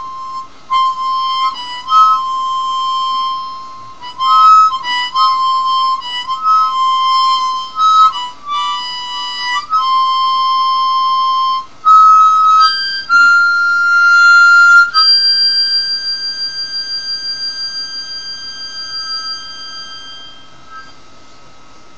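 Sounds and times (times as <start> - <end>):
harmonica melody with tremolo: 0.0 - 21.0.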